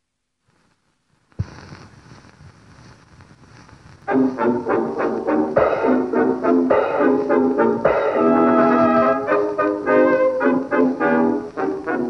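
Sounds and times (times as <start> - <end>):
record surface hiss and crackle: 0.0 - 12.0
stylus thump on record: 1.4 - 1.8.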